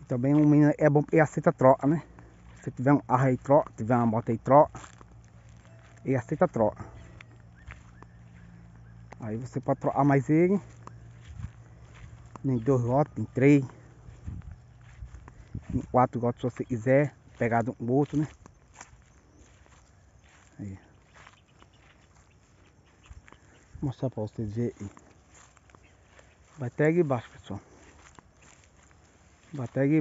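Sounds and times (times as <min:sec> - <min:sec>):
footsteps through dry grass: 0:00.0 - 0:30.0
light crunches: 0:00.0 - 0:30.0.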